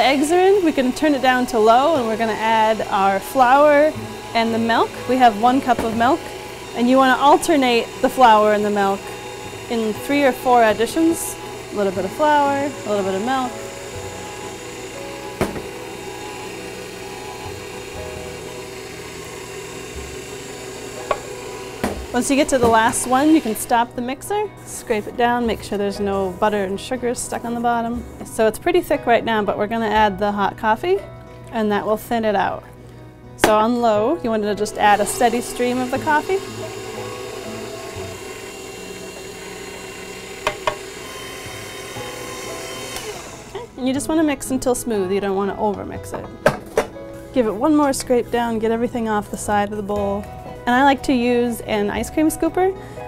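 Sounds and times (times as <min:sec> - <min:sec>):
stand mixer running: 0:00.0 - 0:23.9, 0:34.4 - 0:43.8.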